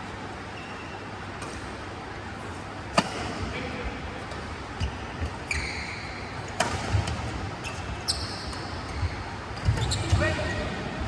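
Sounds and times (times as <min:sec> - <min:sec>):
shoes squeaking on court: 0:00.4 - 0:01.6, 0:04.7 - 0:10.6
rackets striking shuttlecock: 0:06.4 - 0:07.4.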